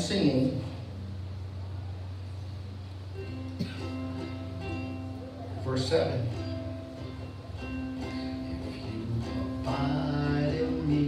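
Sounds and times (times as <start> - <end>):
steady low hum: 0.0 - 11.0
ukulele strumming: 3.1 - 11.0.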